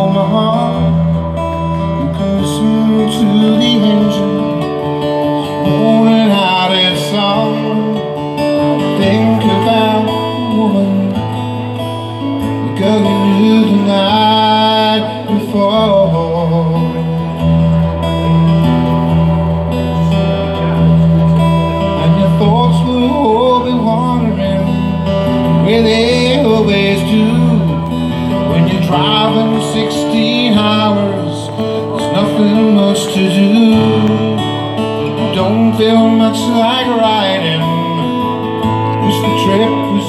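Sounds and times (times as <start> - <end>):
acoustic guitar strumming chords: 0.0 - 40.0
wavering guitar melody: 0.0 - 40.0.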